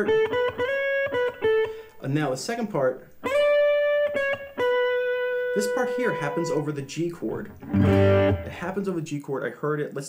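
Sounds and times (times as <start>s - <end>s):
electric guitar melody: 0.0s - 2.0s, 3.0s - 8.8s.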